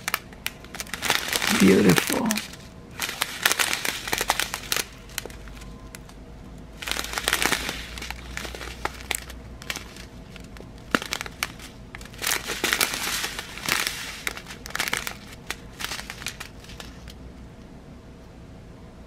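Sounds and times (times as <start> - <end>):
beads shifting in bag: 0.0 - 6.2, 6.8 - 17.2
plastic bags crinkling: 0.0 - 17.2.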